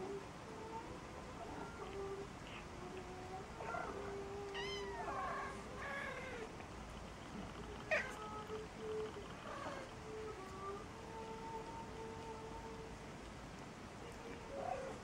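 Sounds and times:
cats meowing: 1.4 - 6.6, 7.4 - 12.9.

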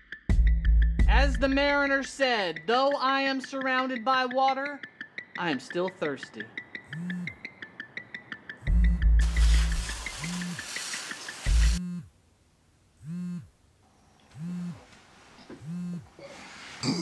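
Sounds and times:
music with fast ticking beat: 6.8 - 7.4, 8.7 - 9.2
mobile phone buzzing: 6.9 - 7.4, 11.5 - 12.1, 13.0 - 13.5, 14.3 - 14.9, 15.5 - 16.2.

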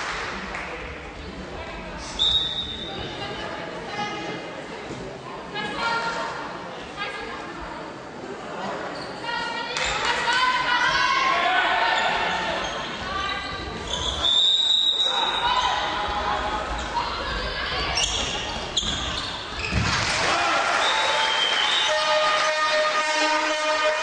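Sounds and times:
players and spectators calling out: 8.9 - 24.0.

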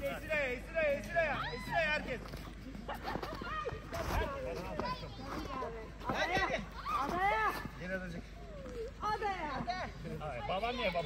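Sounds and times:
adults and children calling out: 0.6 - 7.8, 8.4 - 11.0.

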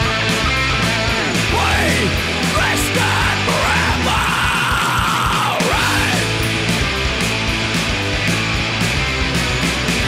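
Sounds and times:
heavy metal song: 0.0 - 10.0.

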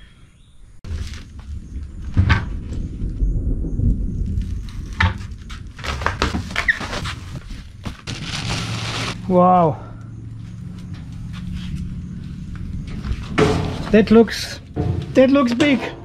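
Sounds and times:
cardboard rumbling and scraping: 0.8 - 3.2, 4.2 - 9.2
plastic wrapping rustling: 5.8 - 9.2
sharp knocks: 14.8 - 16.0.

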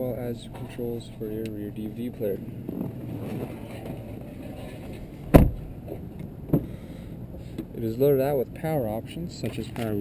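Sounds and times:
low handling rumble: 0.0 - 10.0
vehicle door thumping shut: 5.3 - 5.7.

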